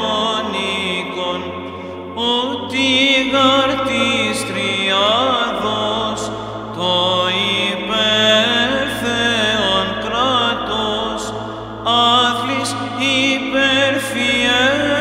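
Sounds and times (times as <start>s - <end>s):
low held vocal drone: 0.0s - 15.0s
person chanting a hymn: 0.0s - 15.0s.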